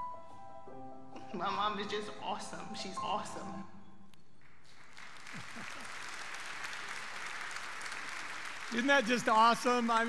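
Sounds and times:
congregation applauding: 4.4 - 10.0.

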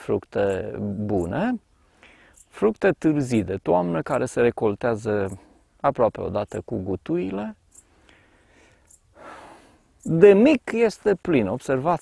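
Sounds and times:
man breathing in: 1.8 - 2.4, 7.8 - 9.9.

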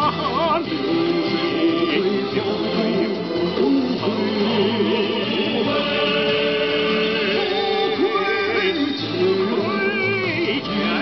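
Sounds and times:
sung song with instrumental backing: 0.0 - 11.0.

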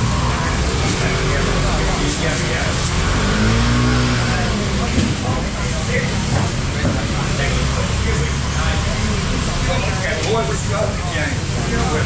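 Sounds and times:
motor scooter engine passing: 0.0 - 6.8.

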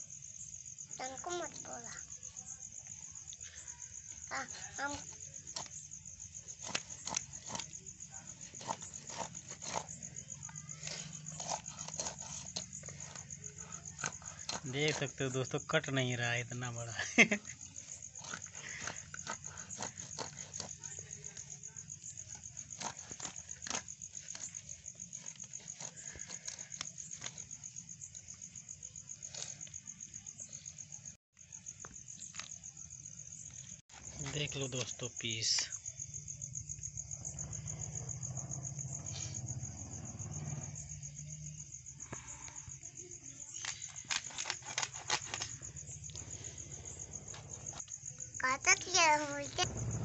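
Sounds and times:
crickets chirping: 0.0 - 50.0
blade rasping through fish: 6.5 - 15.1, 17.8 - 21.4.

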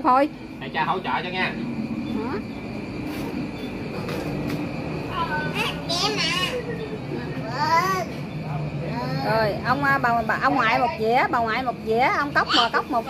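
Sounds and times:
children and adults talking: 0.0 - 13.0
low background hum: 0.0 - 13.0
child's high voice: 5.2 - 6.7.

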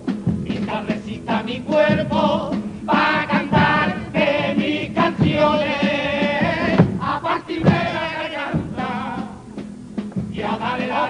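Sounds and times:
instrumental accompaniment: 0.0 - 11.0
chorus of voices singing: 0.4 - 9.7, 10.3 - 11.0.

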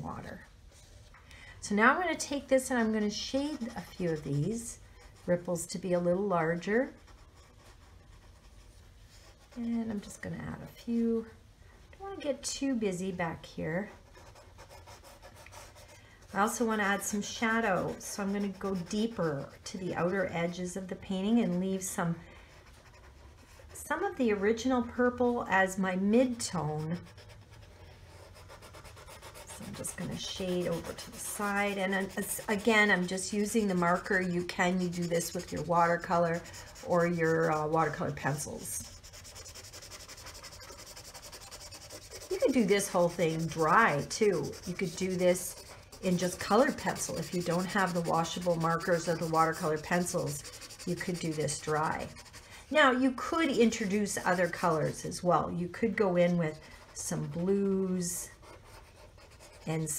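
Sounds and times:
marker scratching on paper: 2.1 - 10.2, 13.9 - 24.4, 26.1 - 59.9.

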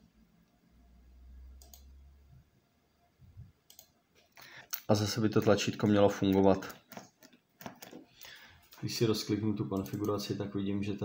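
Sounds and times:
computer mouse clicks: 1.5 - 2.0, 3.7 - 5.6, 9.8 - 10.3.

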